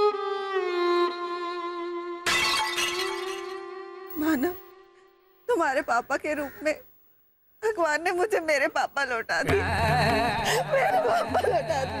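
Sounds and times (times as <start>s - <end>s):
shattering crash: 2.3s - 3.6s.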